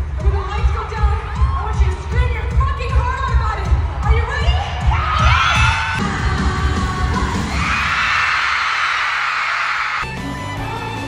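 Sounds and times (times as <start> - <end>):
live pop music with singing: 0.0 - 7.9
crowd screaming and cheering: 1.0 - 10.1.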